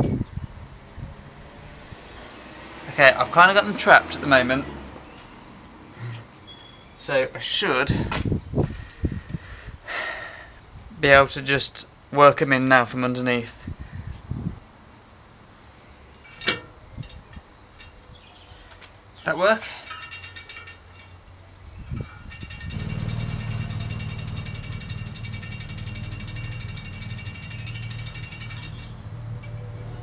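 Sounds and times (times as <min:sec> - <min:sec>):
clicks and knocks of parts fitted: 0:16.2 - 0:18.0, 0:19.8 - 0:21.3
bicycle freehub ratcheting: 0:16.4 - 0:18.0, 0:19.8 - 0:29.6
low hum: 0:21.9 - 0:29.8.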